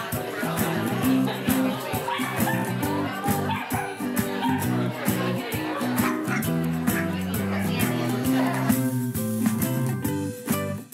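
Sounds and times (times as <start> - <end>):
music with steady beat: 0.0 - 10.9
dog barking: 2.1 - 4.7, 6.0 - 7.1.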